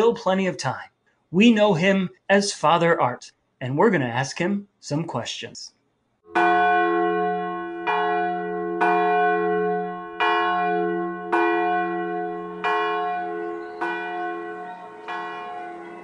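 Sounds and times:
church bell tolling: 0:06.3 - 0:16.0.

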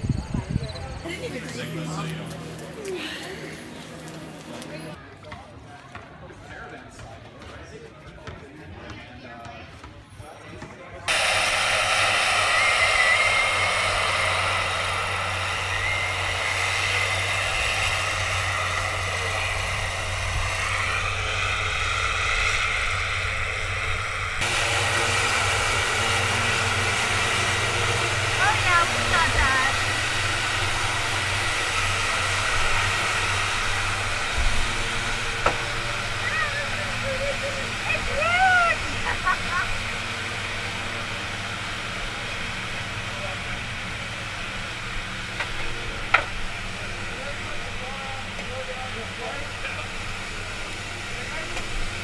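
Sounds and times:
turboprop engines running: 0:00.0 - 0:05.0, 0:10.8 - 0:52.0.

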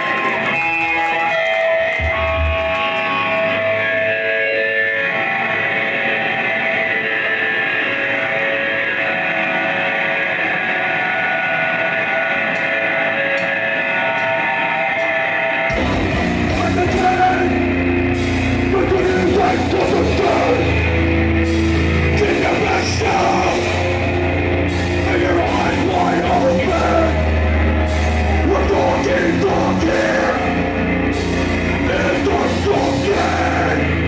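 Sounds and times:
electric guitars ringing notes: 0:00.0 - 0:34.0
punk band playing: 0:00.0 - 0:34.0.

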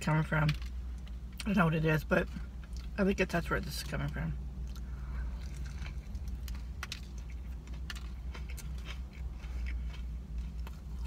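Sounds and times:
steady low hum: 0:00.0 - 0:11.0
crunchy chewing: 0:04.6 - 0:11.0.

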